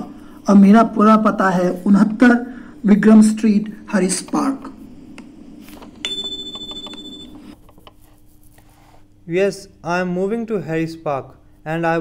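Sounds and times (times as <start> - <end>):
two-tone electronic chime: 6.0 - 7.4.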